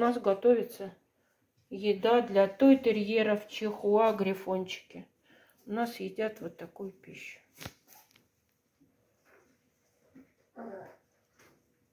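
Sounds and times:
small dog crying: 10.6 - 11.0.

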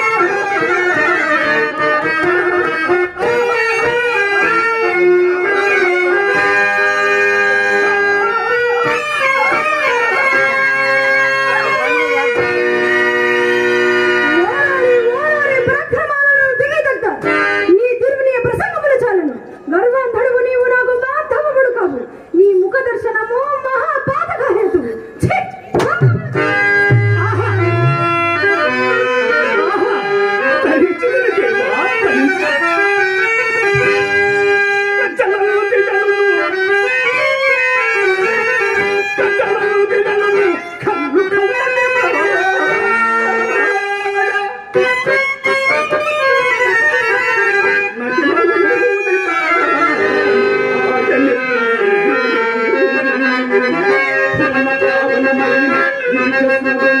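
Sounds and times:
harmonium chords: 0.0 - 21.4, 22.0 - 57.0.

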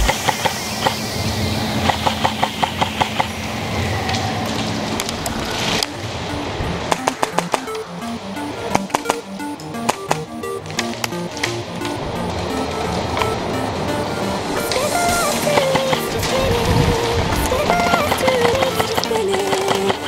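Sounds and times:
background music with beat: 5.9 - 20.0.

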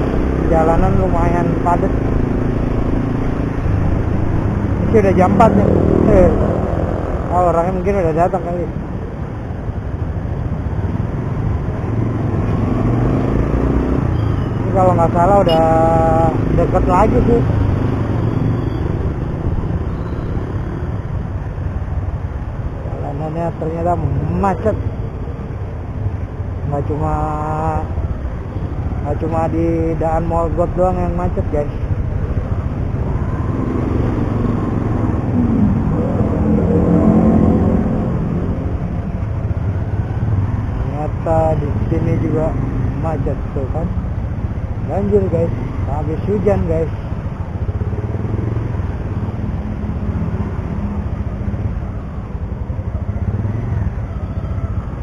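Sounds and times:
wind and road noise: 0.0 - 55.0.

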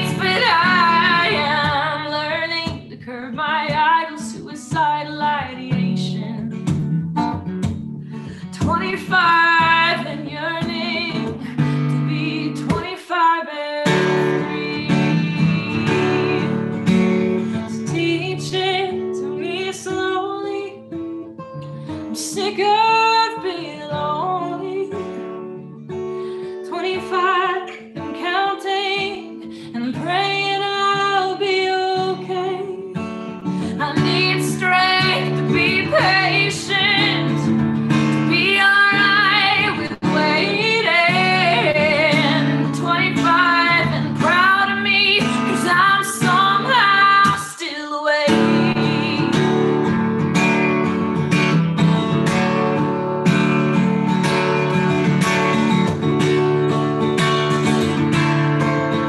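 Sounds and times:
woman singing: 0.0 - 6.9, 8.1 - 50.0
acoustic guitar: 0.0 - 59.0.

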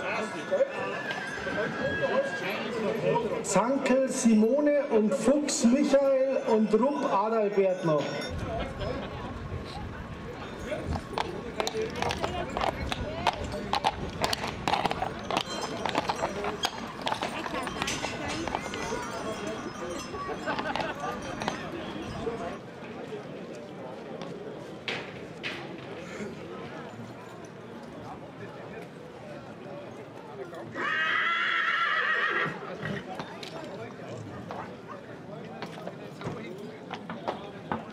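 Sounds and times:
horse hooves on cobblestones: 0.0 - 6.8, 7.8 - 37.9
crowd chatter: 0.0 - 37.9
horse whinnying: 30.7 - 33.1.

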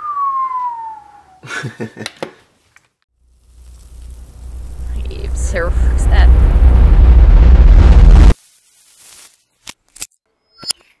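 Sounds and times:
deep rumbling boom: 3.9 - 8.4.

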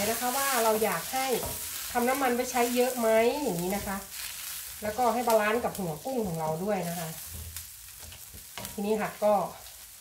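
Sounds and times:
shrimp sizzling in oil: 0.0 - 10.0
wooden spatula scraping a wok: 0.0 - 10.0.

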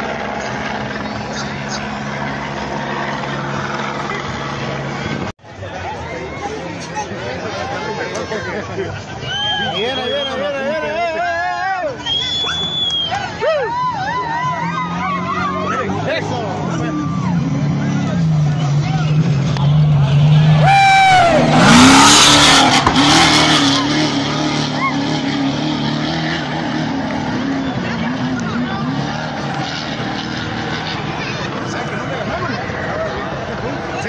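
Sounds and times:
race truck engine passing: 0.0 - 34.0
spectators' voices: 0.0 - 34.0.

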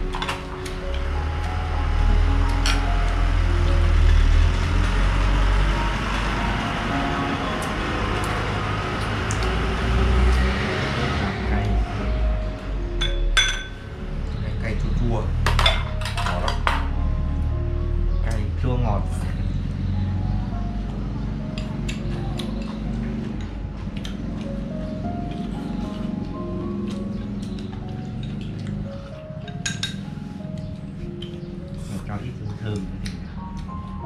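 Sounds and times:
background music with held notes: 0.0 - 34.0
utensils clinking on ceramic bowls: 13.0 - 13.8, 15.4 - 16.9, 29.4 - 30.0.

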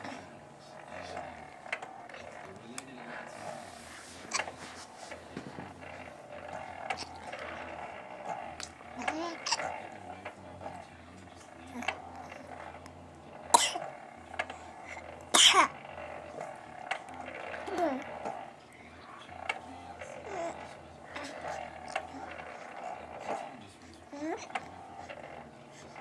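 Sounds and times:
infant cooing: 8.6 - 9.7, 11.7 - 12.5, 14.8 - 15.8, 17.6 - 18.1, 20.0 - 23.4, 24.1 - 24.6.

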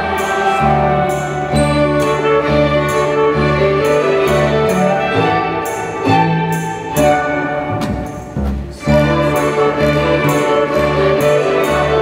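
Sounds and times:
small orchestra playing: 0.0 - 12.0.

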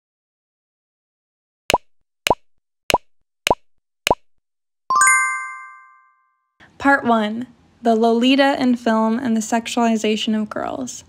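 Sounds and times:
cartoon pops: 1.7 - 4.3
sparkly chime: 4.9 - 6.2.

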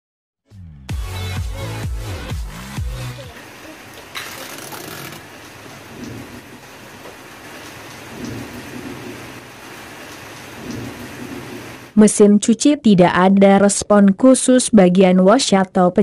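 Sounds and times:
steady noisy hiss: 2.9 - 12.0.

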